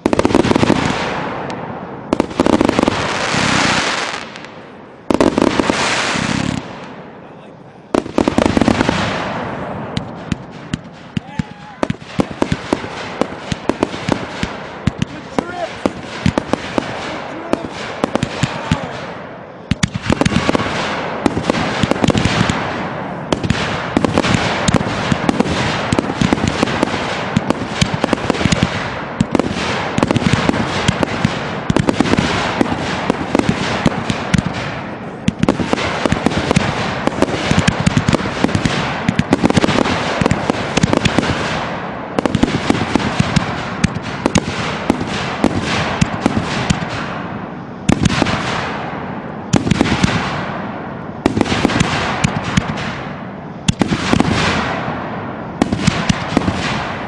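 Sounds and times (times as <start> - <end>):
fireworks bangs and crackling: 0.0 - 57.0.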